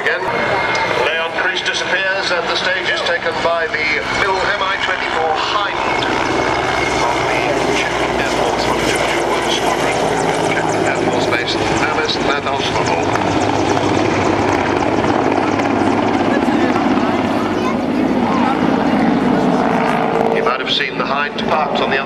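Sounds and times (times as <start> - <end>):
helicopter engines and rotor: 0.0 - 22.0.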